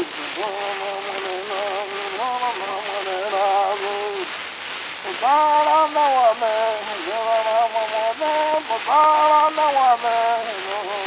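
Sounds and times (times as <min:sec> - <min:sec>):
person chanting: 0:00.0 - 0:04.4, 0:05.0 - 0:11.0
cylinder surface hiss: 0:00.0 - 0:11.0.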